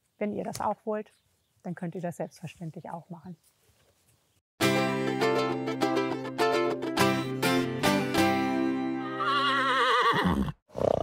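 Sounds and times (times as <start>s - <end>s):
plucked string music jingle: 4.6s - 9.0s
horse whinnying: 9.0s - 11.0s.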